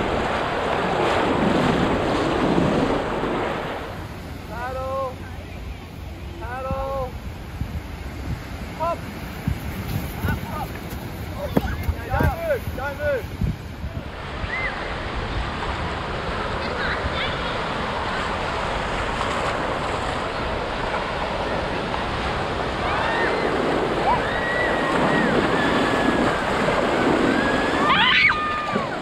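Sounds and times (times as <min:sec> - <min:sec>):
surf breaking in shallows: 0:00.0 - 0:29.0
wind on microphone: 0:00.0 - 0:29.0
distant children shouting: 0:22.7 - 0:29.0.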